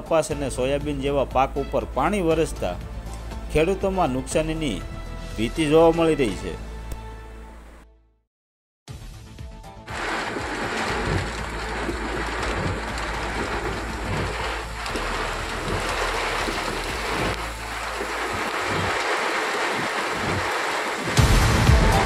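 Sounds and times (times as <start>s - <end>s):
heavy rain pouring: 9.9s - 22.0s
wind rumbling on microphone: 10.0s - 21.4s.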